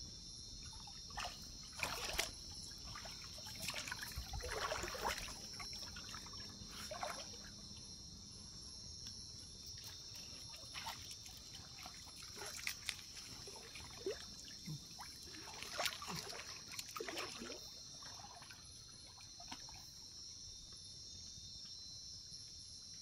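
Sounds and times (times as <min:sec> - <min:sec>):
insect chorus: 0:00.0 - 0:23.0
water trickling and splashing: 0:00.6 - 0:07.9, 0:09.6 - 0:20.2.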